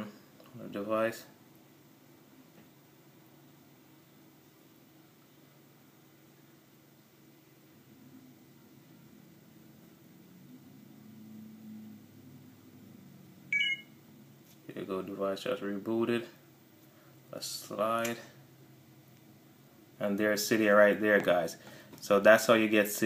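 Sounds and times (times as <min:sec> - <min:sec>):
short electronic beep: 0:13.5 - 0:13.9.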